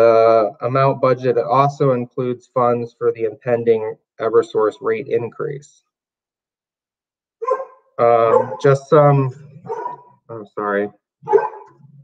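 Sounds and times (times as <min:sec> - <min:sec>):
dog barking: 0:07.4 - 0:08.7, 0:09.6 - 0:10.1, 0:11.2 - 0:11.8.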